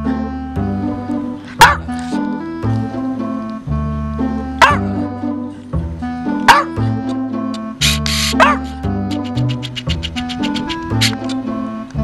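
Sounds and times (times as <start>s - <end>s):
background music with steady beat: 0.0s - 12.0s
dog barking: 1.6s - 1.8s, 4.6s - 4.9s, 6.5s - 6.8s, 8.3s - 8.7s.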